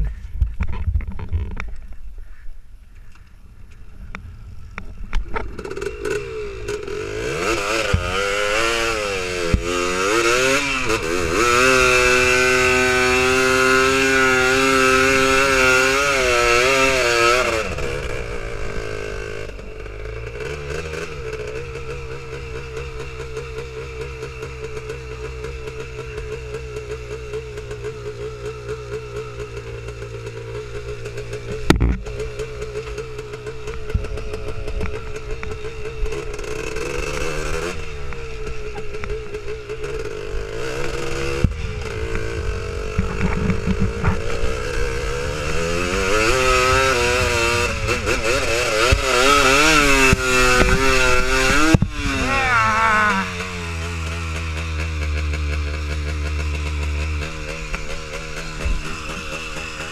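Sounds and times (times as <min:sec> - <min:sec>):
quad engine revving: 0:05.1 - 0:59.9.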